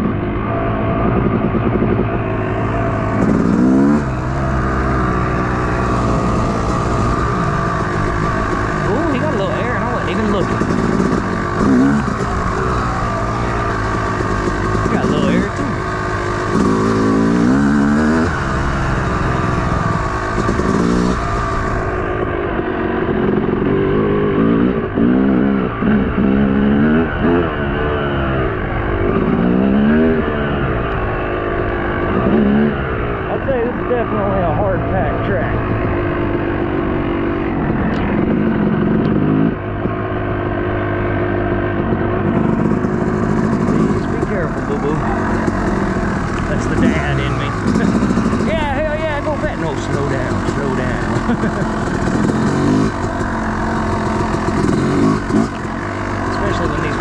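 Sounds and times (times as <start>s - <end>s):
dirt bike engine revving: 0.0s - 57.0s.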